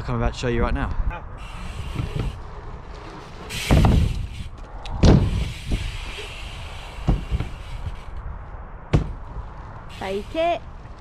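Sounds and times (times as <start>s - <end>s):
bike tyres rolling up ramp: 1.4s - 11.0s
bike landing hit: 3.5s - 4.4s, 5.0s - 6.2s, 6.8s - 8.0s, 8.9s - 9.4s.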